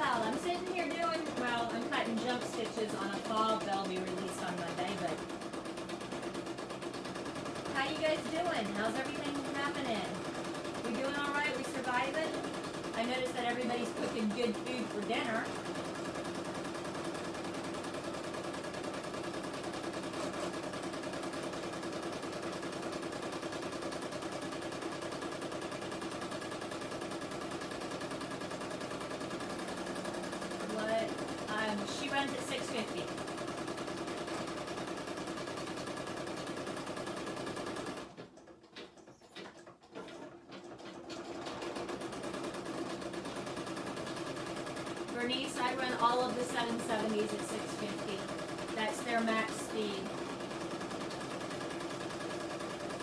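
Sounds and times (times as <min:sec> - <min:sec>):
embroidery machine stitching: 0:00.0 - 0:53.0.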